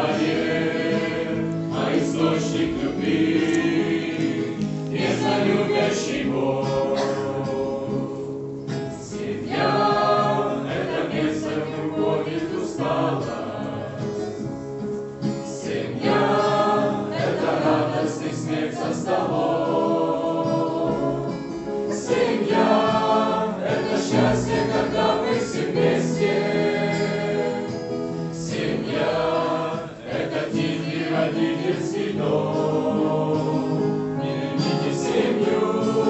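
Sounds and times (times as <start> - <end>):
acoustic guitar: 0.0 - 36.0
mixed choir singing: 0.0 - 36.0.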